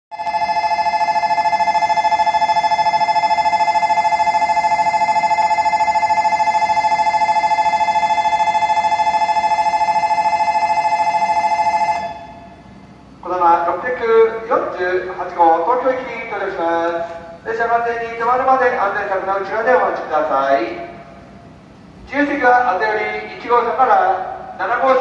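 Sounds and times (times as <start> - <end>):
electric bell ringing: 0.1 - 12.6.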